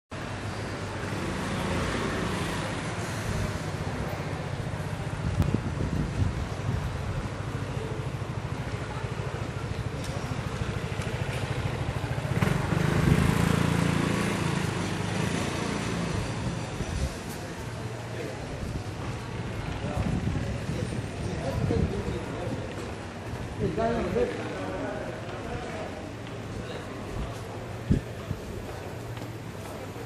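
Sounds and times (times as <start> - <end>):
low rumble of traffic: 0.1 - 30.0.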